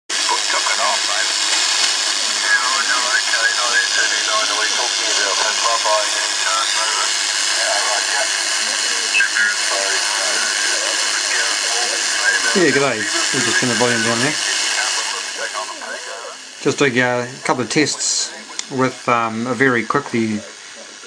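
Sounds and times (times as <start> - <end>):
garbled radio voices: 0.1 - 21.0
radio receiver hiss: 0.1 - 21.0.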